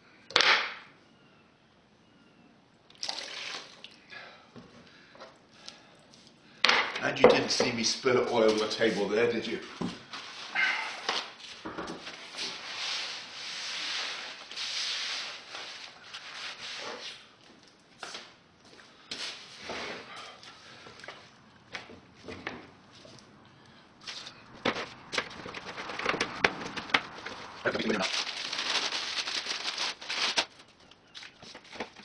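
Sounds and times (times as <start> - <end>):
plastic wrap crinkling: 25.2 - 32.0.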